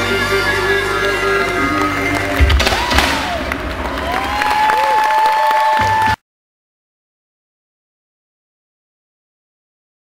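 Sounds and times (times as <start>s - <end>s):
live stage music: 0.0s - 6.2s
crowd cheering: 1.0s - 6.2s.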